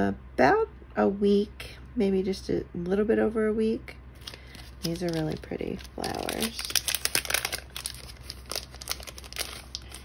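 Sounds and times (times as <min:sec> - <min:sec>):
plastic bag crinkling: 0:04.2 - 0:10.0.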